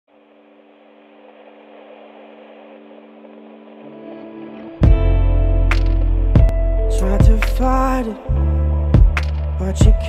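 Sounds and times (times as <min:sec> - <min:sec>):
held synth chord: 0:00.1 - 0:10.0.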